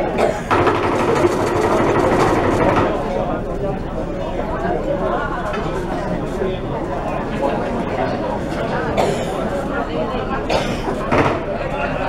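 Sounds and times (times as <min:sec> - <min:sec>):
drum roll: 0:00.3 - 0:03.1.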